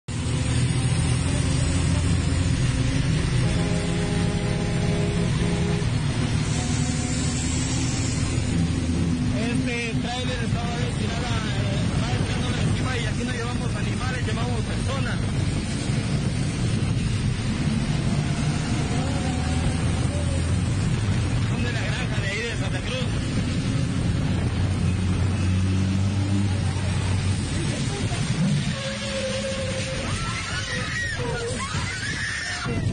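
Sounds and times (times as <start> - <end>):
bus engine and road noise: 0.0 - 32.9
voices: 18.4 - 23.7.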